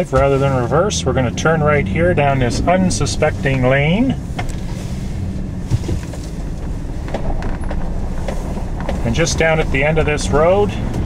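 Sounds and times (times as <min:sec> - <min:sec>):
truck engine running: 0:00.0 - 0:11.0
tyres on gravel: 0:00.0 - 0:11.0.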